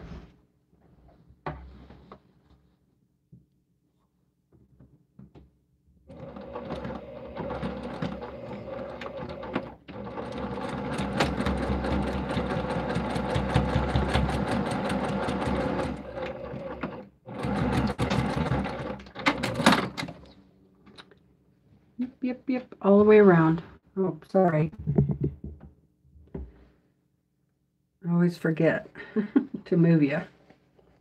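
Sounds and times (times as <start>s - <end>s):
sewing machine stitching: 6.1s - 20.2s.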